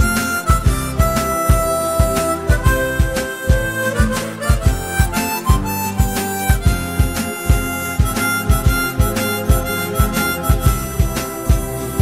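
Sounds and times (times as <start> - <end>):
steady drum beat: 0.0 - 12.0
sustained lead melody: 0.0 - 12.0.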